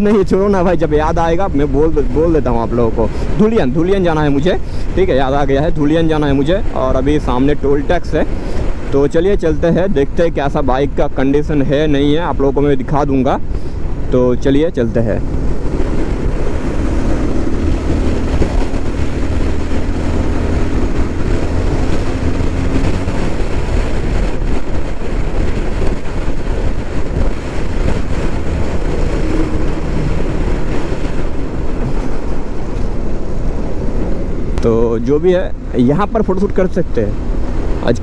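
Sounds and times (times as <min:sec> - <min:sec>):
wind noise on microphone: 0:00.0 - 0:36.2
motorcycle engine drone: 0:15.0 - 0:36.2.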